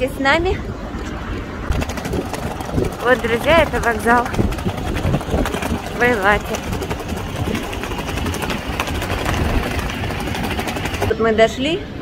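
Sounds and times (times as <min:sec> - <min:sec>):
traffic rumble: 0:00.0 - 0:12.0
wind on microphone: 0:00.0 - 0:12.0.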